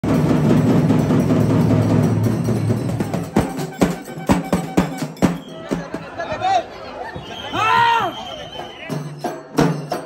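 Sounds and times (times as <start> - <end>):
fast loud drumming: 0.0 - 6.2, 7.8 - 10.0.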